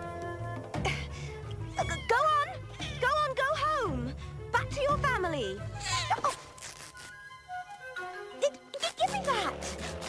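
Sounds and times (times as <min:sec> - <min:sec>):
orchestral music: 0:07.1 - 0:10.0.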